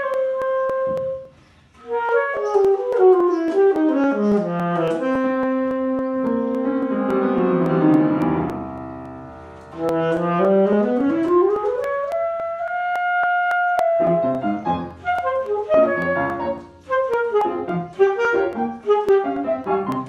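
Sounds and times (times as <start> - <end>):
alto saxophone solo: 0.0 - 8.6, 9.7 - 20.0
piano chord: 3.2 - 12.1.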